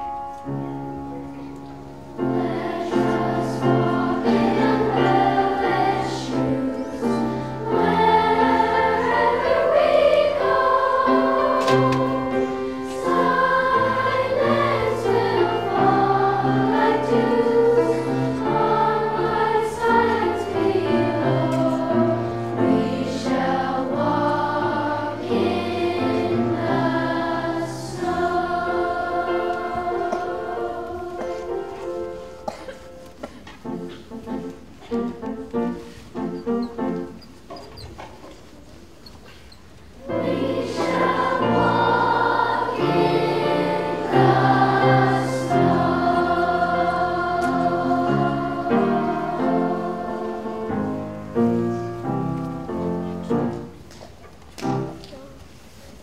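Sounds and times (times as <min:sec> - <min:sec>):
piano accompaniment: 0:00.0 - 0:37.5, 0:40.0 - 0:53.9, 0:54.5 - 0:55.3
children's choir singing: 0:00.0 - 0:38.4, 0:39.9 - 0:56.0.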